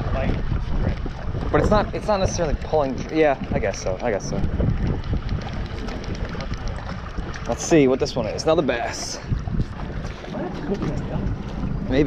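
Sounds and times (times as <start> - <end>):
water lapping against boat: 0.0 - 12.0
wind rumbling on microphone: 0.0 - 12.0.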